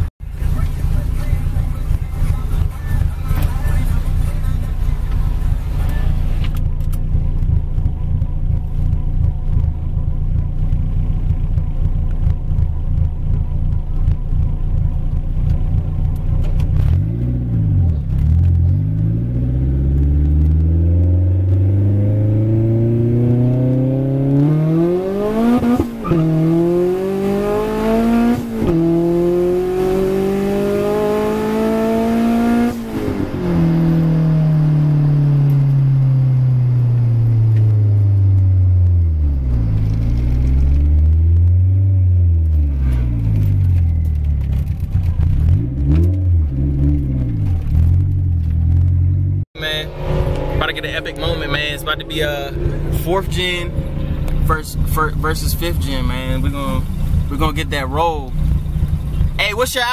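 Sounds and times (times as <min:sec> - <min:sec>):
car engine accelerating hard: 0:00.0 - 0:59.9.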